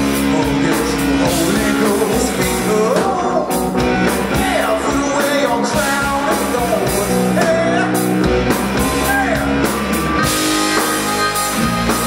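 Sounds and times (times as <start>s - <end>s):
man singing: 0.0s - 9.8s
drums: 0.0s - 12.0s
electric guitar: 0.0s - 12.0s
keyboard: 0.0s - 12.0s.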